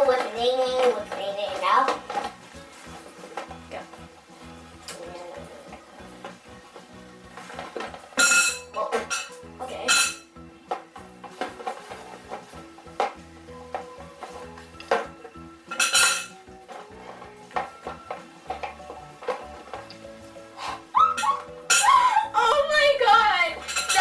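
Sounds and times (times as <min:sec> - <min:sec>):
background music: 0:00.0 - 0:24.0
plastic bottles clattering: 0:00.0 - 0:24.0.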